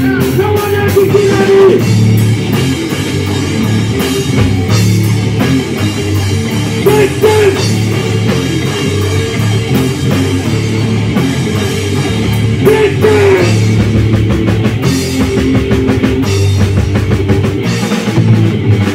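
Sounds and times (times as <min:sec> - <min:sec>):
rock band playing live: 0:00.0 - 0:18.9.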